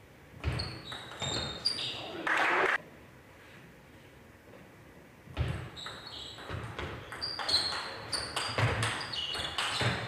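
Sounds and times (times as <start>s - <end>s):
ping pong ball knocking on bat and table: 0.4s - 1.5s, 5.4s - 10.0s
shoes squeaking: 0.4s - 2.2s, 5.4s - 10.0s.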